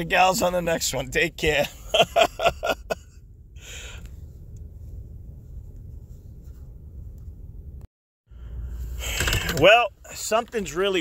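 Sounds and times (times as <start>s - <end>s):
car engine rumble in cabin: 0.0s - 11.0s.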